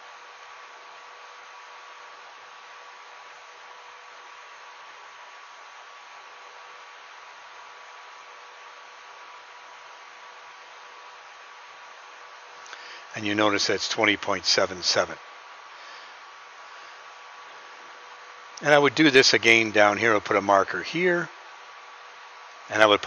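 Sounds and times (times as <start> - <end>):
background hiss: 0.0 - 23.0
faint hum: 0.0 - 23.0.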